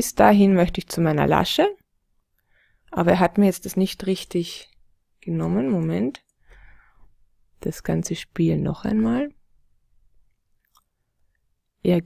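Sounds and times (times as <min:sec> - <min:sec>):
woman speaking: 0:00.0 - 0:01.8, 0:02.9 - 0:06.2, 0:07.6 - 0:09.4.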